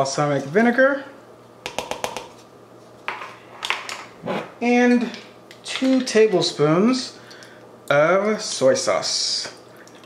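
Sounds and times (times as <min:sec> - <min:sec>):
plastic cup knocking on glass bowl: 0:01.7 - 0:02.3.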